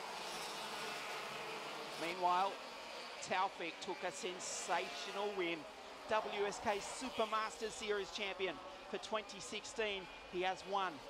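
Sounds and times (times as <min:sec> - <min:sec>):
kart engines buzzing at high revs: 0:00.0 - 0:11.0.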